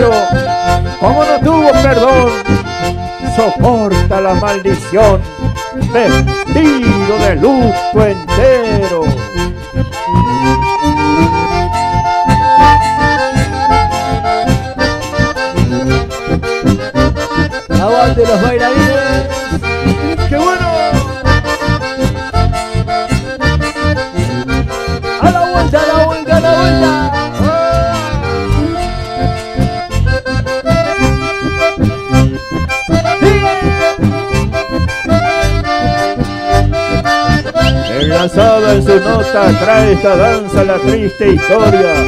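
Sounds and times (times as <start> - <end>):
bandoneon melody: 0.0 - 42.0
bass guitar: 0.0 - 42.0
button accordion melody: 0.0 - 42.0
acoustic guitar: 11.0 - 40.7.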